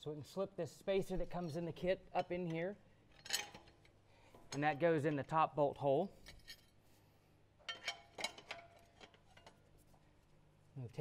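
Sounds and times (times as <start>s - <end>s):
metal hardware clinking: 1.2s - 5.3s, 6.2s - 6.8s, 7.6s - 9.7s.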